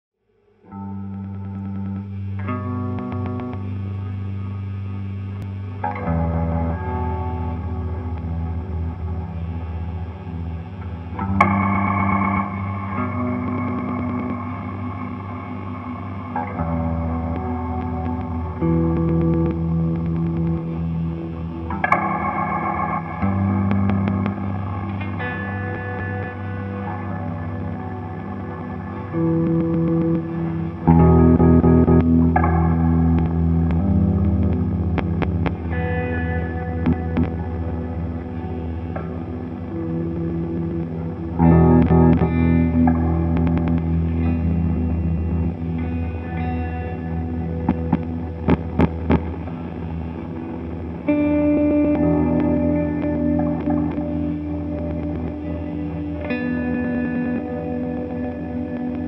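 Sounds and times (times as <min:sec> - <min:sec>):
ambient electric guitar chords: 0:00.2 - 0:59.0
low guitar drone: 0:00.2 - 0:59.0.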